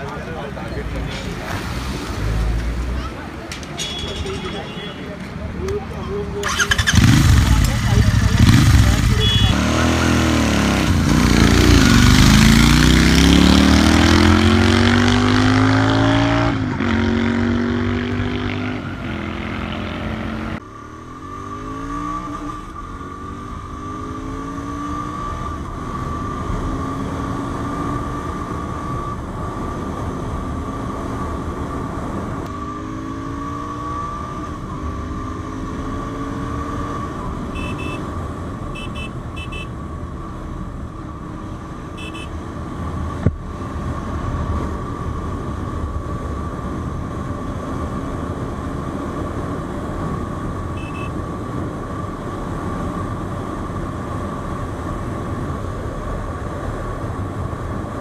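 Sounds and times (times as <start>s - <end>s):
motorcycle engine revving: 6.2s - 31.2s, 32.5s - 39.7s, 41.9s - 42.4s.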